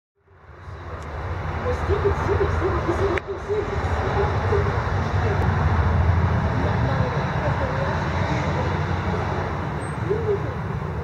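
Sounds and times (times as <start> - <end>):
person speaking: 1.6 - 5.6.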